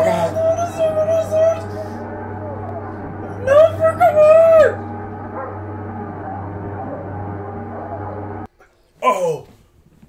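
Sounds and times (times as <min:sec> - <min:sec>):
low movie soundtrack with hum: 0:00.0 - 0:09.4.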